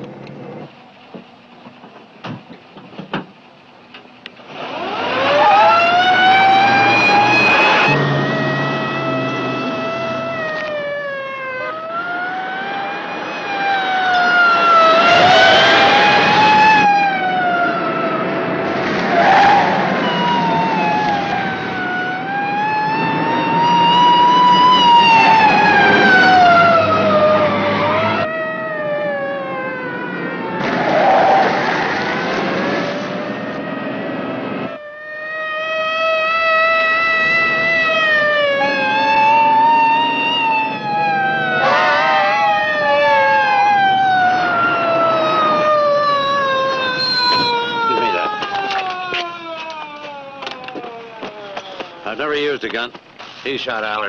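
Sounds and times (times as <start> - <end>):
car engine: 0.0 - 34.9, 35.8 - 52.2
police car siren wailing: 4.4 - 52.7.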